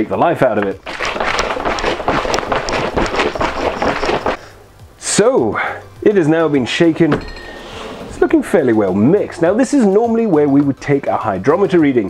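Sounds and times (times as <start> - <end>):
plastic jug rattling and knocking: 0.5 - 4.4
liquid sloshing in plastic jug: 0.7 - 4.4.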